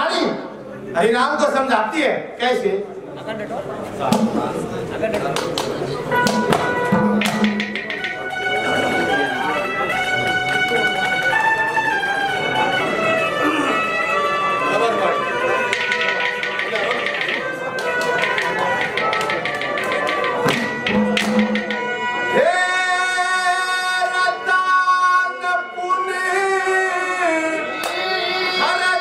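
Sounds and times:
steady held instrument tone: 4.0s - 5.1s, 6.0s - 10.9s, 11.6s - 22.5s
sharp percussion strikes: 4.0s - 10.8s, 15.5s - 22.3s.

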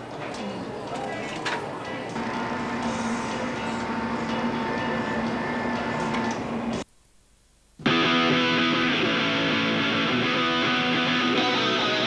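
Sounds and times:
machine mechanical hum: 0.0s - 12.0s.

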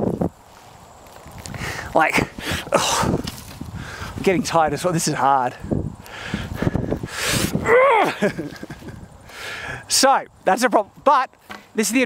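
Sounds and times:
man groaning with effort: 2.6s - 3.2s, 7.5s - 8.3s
man exhaling hard: 6.1s - 7.9s, 9.3s - 9.9s.

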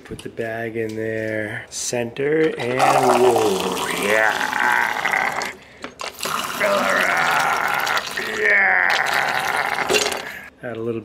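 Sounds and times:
water pouring into paper cup: 2.6s - 10.2s.

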